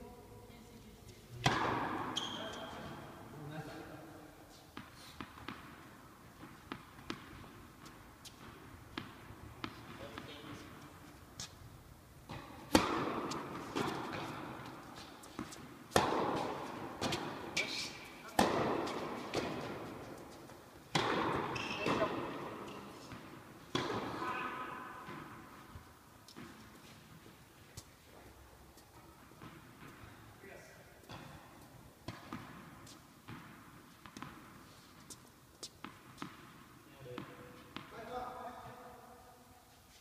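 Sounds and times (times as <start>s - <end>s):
tennis ball bouncing: 1.4s - 2.7s, 4.7s - 10.8s, 12.2s - 30.3s, 31.0s - 38.1s
racket hitting ball echoing: 1.4s - 3.2s, 4.7s - 10.8s, 12.2s - 28.3s, 31.1s - 38.1s.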